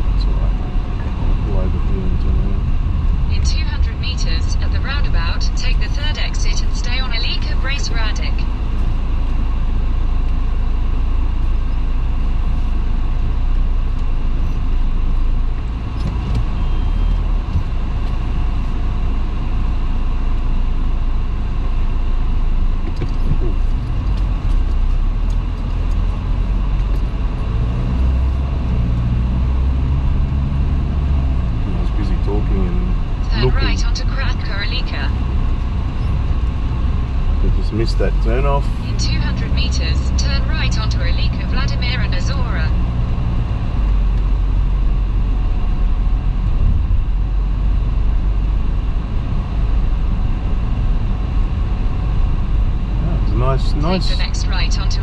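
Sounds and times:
car engine rumble: 0.0s - 55.0s
tyre noise on road: 8.4s - 33.4s.

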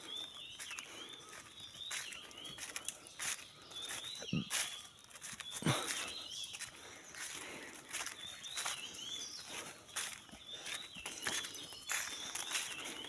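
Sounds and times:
birds calling high notes: 0.0s - 13.0s
footsteps on woodland path: 0.0s - 13.0s
low bird calls: 0.0s - 13.0s.

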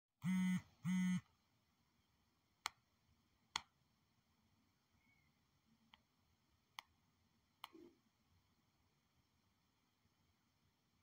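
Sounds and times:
short electronic buzz tones: 0.2s - 1.2s.

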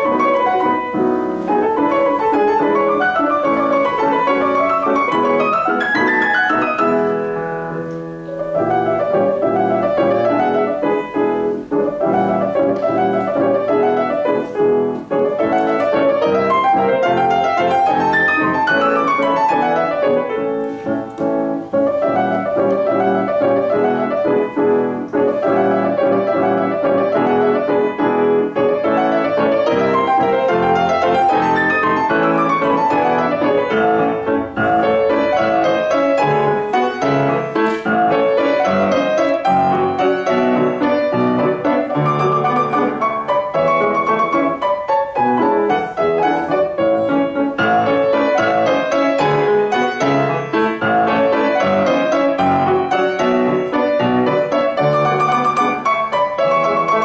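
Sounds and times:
grand piano classical piece: 0.0s - 57.0s.

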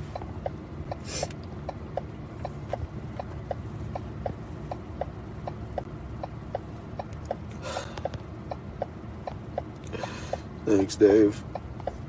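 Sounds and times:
rapid electronic ticking: 1.6s - 7.5s, 8.1s - 12.0s.

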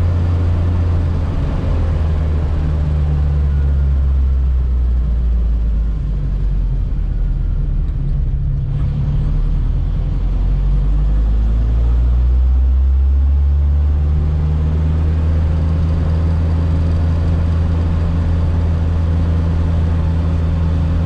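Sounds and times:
car engine drone from inside cabin: 0.0s - 21.0s.

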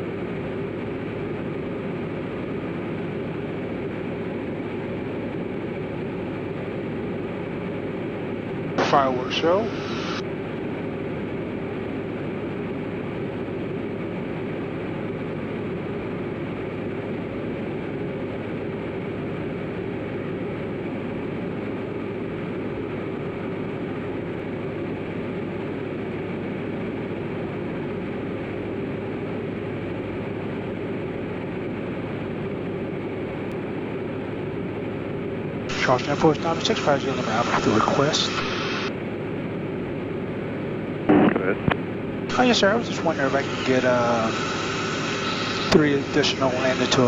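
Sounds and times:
aircraft engine and propeller drone: 0.0s - 47.0s.

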